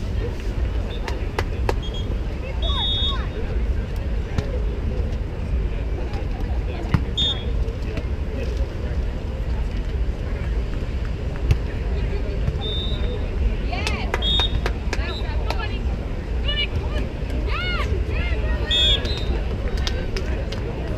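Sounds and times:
steady low rumble: 0.0s - 20.9s
high whistle-like tone: 12.6s - 13.2s.

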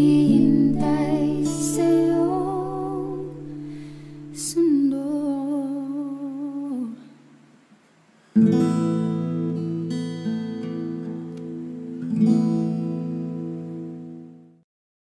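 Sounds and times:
person singing with vibrato: 0.0s - 7.3s
acoustic guitar chord strums: 0.0s - 14.6s.

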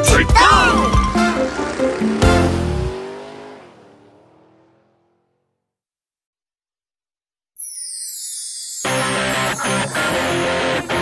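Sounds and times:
cartoon truck engine driving away: 0.0s - 5.7s.

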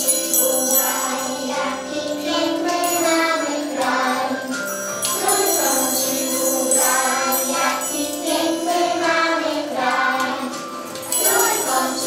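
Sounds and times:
children singing: 0.0s - 12.0s
tambourine jingling: 0.0s - 12.0s.

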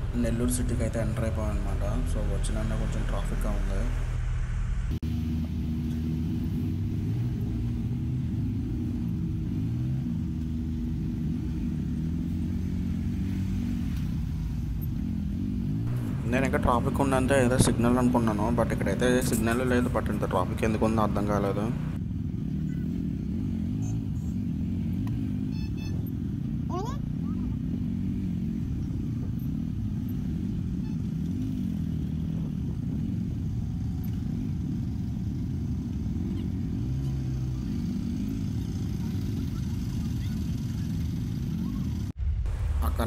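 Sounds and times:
muffled motorcycle engine: 0.0s - 43.0s.

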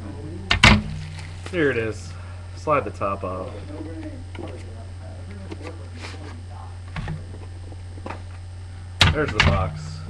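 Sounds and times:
faint talk: 0.0s - 0.6s, 1.5s - 8.2s
low hum: 0.0s - 10.0s.

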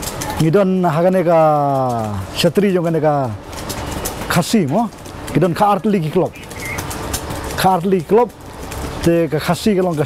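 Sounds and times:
man talking: 0.4s - 3.4s, 4.3s - 6.5s, 7.6s - 8.4s, 9.0s - 10.0s.

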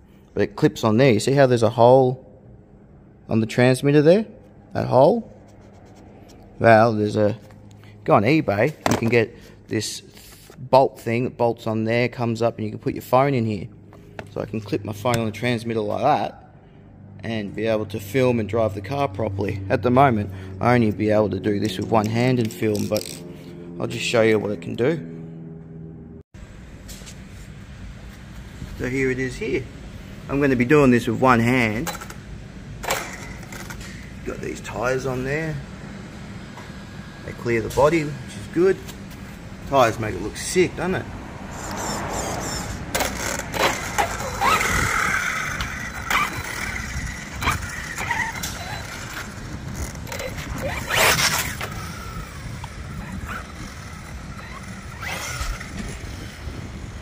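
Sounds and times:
steady low hum with tones: 0.0s - 57.0s
tyres and chassis clicking: 31.7s - 34.5s, 41.2s - 57.0s
electric motor whine: 41.5s - 57.0s.

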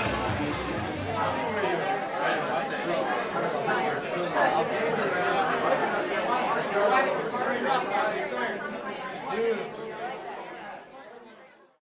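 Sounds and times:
crowd chatter: 0.0s - 11.8s.

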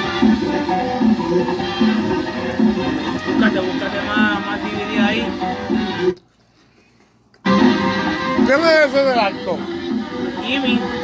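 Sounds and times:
live merengue band music: 0.0s - 6.2s, 7.5s - 11.0s
keyboard: 0.0s - 11.0s.

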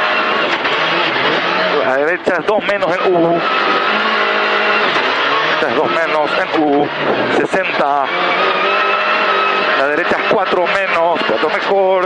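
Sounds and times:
car engine running at speed: 0.0s - 12.0s
tyre and road noise on dirt: 0.0s - 12.0s.

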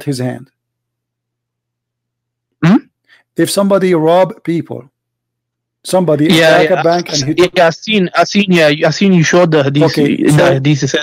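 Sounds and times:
person saying mm-hmm: 2.6s - 2.9s.

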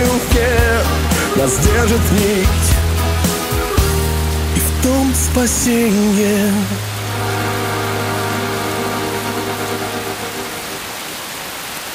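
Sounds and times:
rain hiss: 0.0s - 11.9s
held music chord: 6.8s - 11.0s.

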